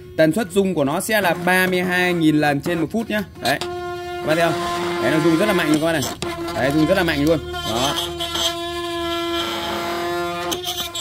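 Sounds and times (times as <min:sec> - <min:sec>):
electric toothbrush buzzing: 0:03.7 - 0:11.0.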